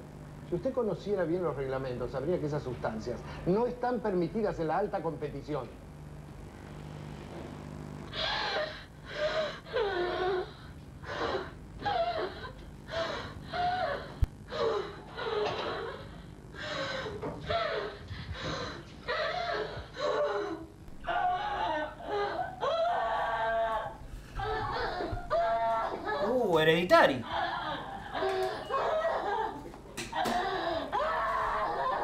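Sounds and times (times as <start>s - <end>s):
woman sobbing and wailing: 8.1s - 26.4s, 27.2s - 32.0s.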